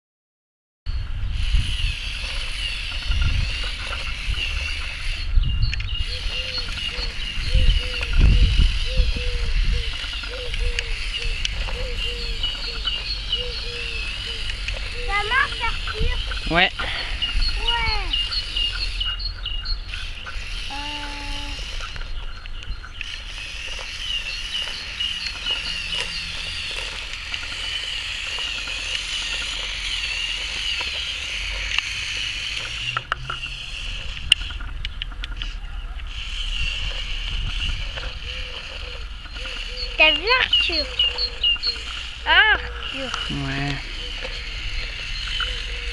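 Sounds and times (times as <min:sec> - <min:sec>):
bird chirping: 0:00.9 - 0:45.9
toy motor gear whine: 0:01.2 - 0:45.9.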